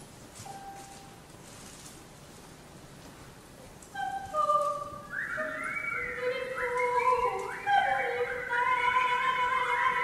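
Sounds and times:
women's choir singing: 0:06.2 - 0:10.0.

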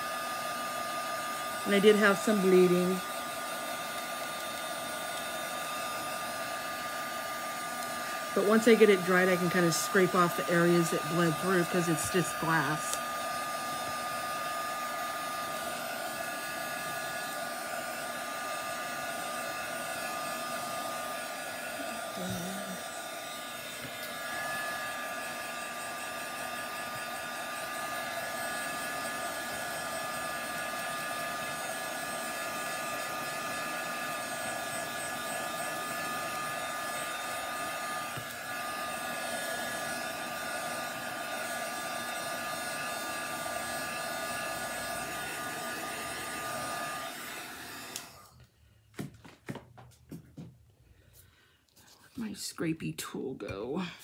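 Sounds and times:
hot-air dryer blowing: 0:00.0 - 0:54.0.

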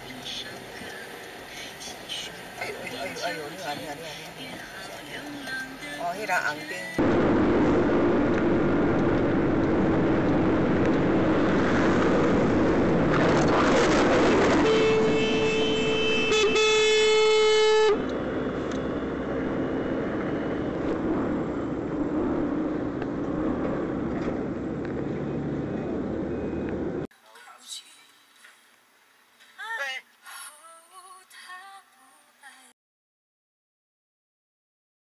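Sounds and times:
scooter road and wind noise: 0:07.0 - 0:27.1
vehicle horn blast: 0:14.5 - 0:18.1.

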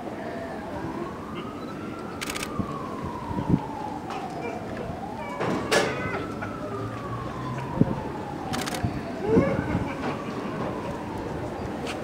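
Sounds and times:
siren wailing: 0:00.2 - 0:11.8.

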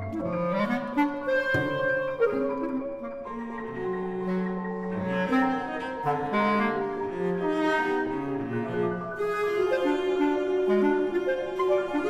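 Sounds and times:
cello playing held notes: 0:00.0 - 0:12.0
clarinet playing held notes: 0:00.0 - 0:12.0.

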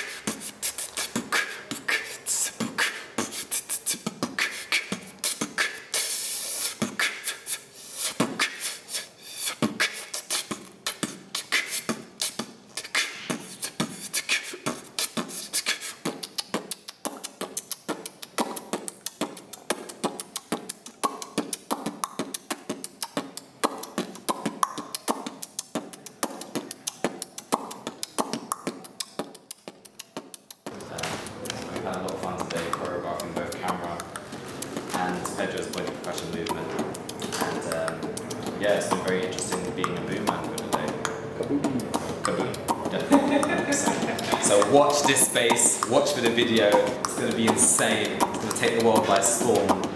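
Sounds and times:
beatboxing: 0:00.0 - 0:49.9
short pitched vocal sounds: 0:40.7 - 0:45.8.

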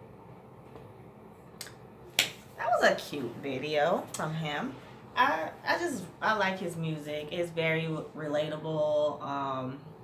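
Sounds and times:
woman speaking: 0:02.6 - 0:10.0.

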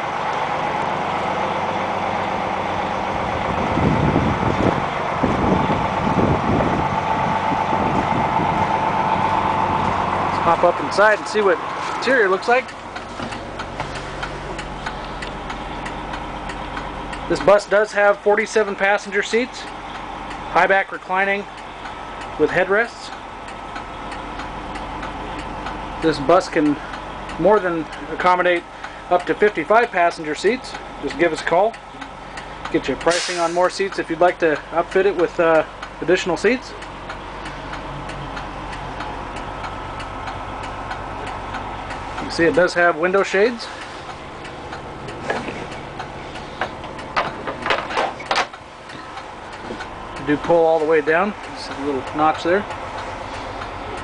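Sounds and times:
diesel engine idling: 0:00.0 - 0:54.0
mechanical hum in bus cabin: 0:00.0 - 0:54.0
light regular ticking: 0:08.3 - 0:54.0.

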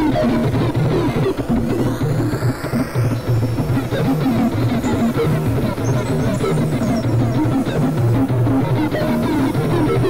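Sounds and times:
noisy crackling synth layer: 0:00.0 - 0:10.0.

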